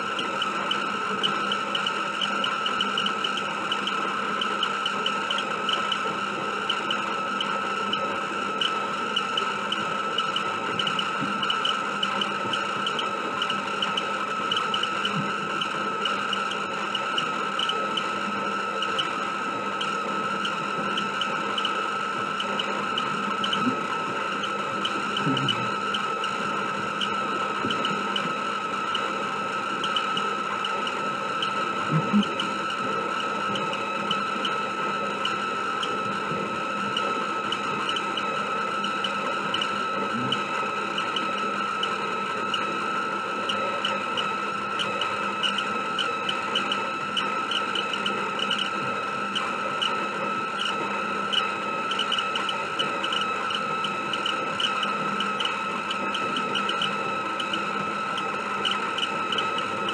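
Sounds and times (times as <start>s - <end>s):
tape rewinder motor whine: 0.0s - 59.9s.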